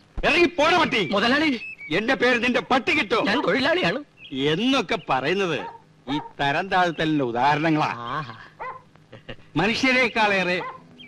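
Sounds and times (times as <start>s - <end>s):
man speaking: 0.2s - 8.0s, 9.5s - 10.8s.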